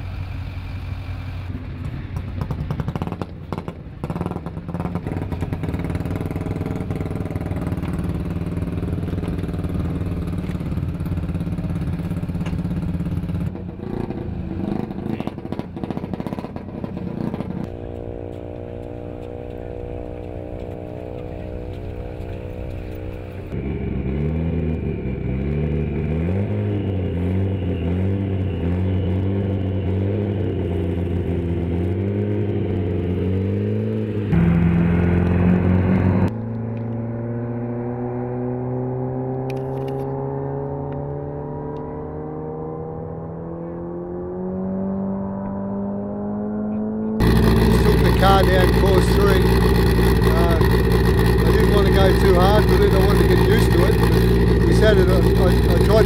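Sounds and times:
vehicle engines running: 0.0s - 56.0s.

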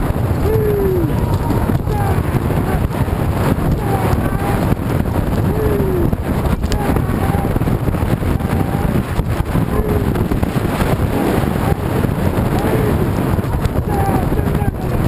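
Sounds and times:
galloping horses and wagon wheels: 0.0s - 15.0s
wind buffeting microphone: 0.0s - 15.0s.

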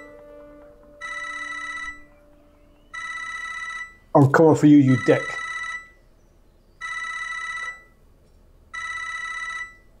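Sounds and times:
mobile phone ringing: 0.0s - 4.1s, 4.8s - 6.0s, 6.8s - 8.0s, 8.7s - 9.9s.

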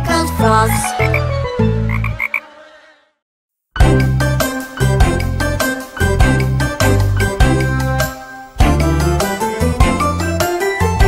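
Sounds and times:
cartoon frog croaks: 0.8s - 1.3s, 1.9s - 2.4s.

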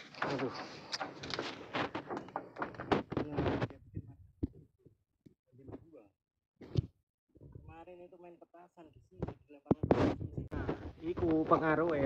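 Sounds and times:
footsteps on metal roof: 0.0s - 3.4s.

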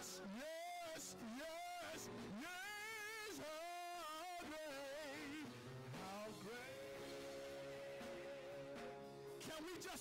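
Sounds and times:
lead singer with vibrato: 0.0s - 10.0s.

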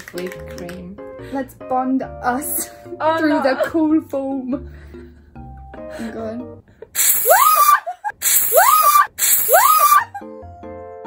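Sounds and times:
aerosol can spraying hiss: 7.0s - 9.9s
woman screaming: 7.1s - 10.2s.

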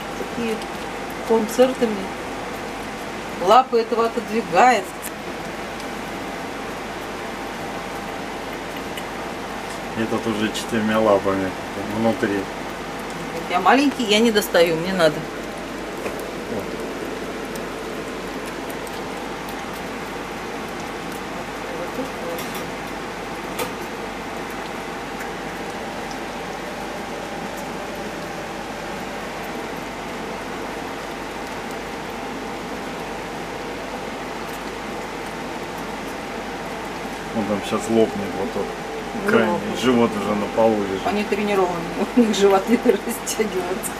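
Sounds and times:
hedgehogs lapping milk: 0.0s - 43.9s.

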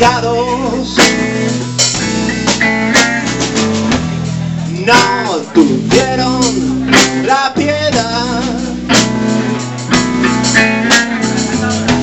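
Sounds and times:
drum and cymbal hits: 0.0s - 12.0s
held electric guitar notes: 0.0s - 12.0s
live rock band playing: 0.0s - 12.0s.

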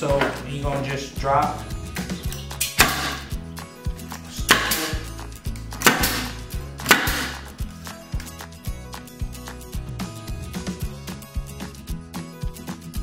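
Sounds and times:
background music: 0.0s - 13.0s
staple gun shots with air hiss: 2.6s - 3.3s, 4.5s - 5.1s, 5.8s - 7.5s.

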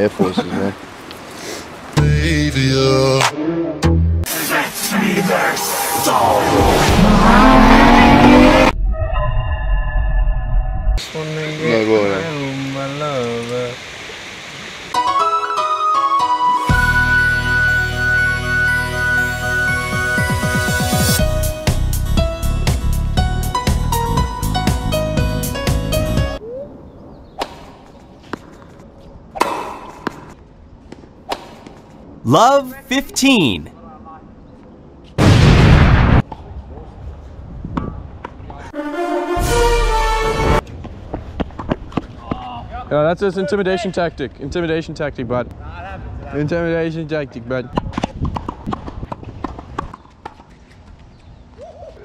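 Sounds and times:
sharp taps on tennis court: 27.4s - 28.8s.

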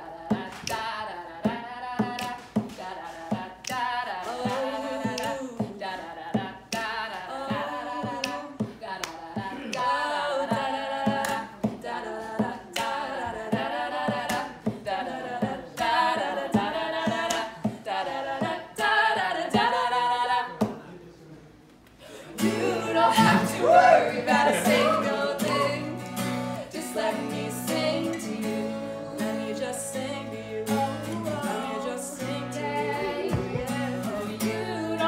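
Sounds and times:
voices singing in harmony: 0.0s - 20.6s, 22.3s - 35.0s
acoustic guitar: 0.0s - 20.7s, 22.0s - 35.0s
percussive hits: 33.2s - 34.4s.

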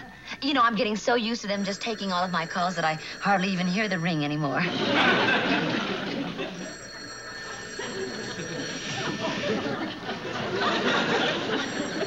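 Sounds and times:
telephone bell ringing: 1.3s - 12.0s.

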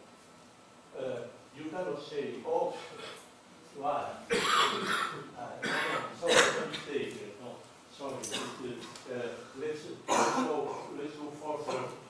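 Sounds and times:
person coughing: 4.3s - 6.9s, 10.1s - 10.9s, 11.7s - 12.0s.

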